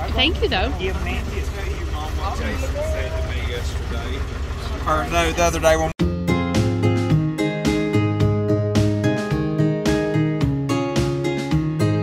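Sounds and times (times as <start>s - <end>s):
people talking: 0.0s - 6.0s
engine rumbling: 0.0s - 11.7s.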